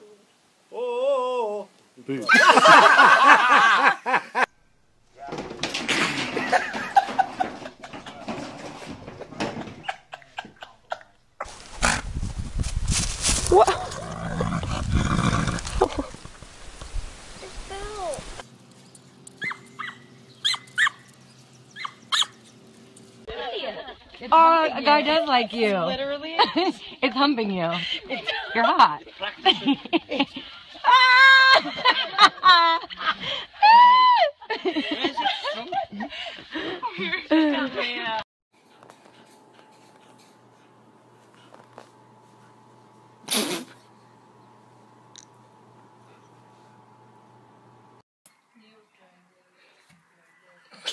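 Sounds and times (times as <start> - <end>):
dog yipping: 19.4 - 22.4.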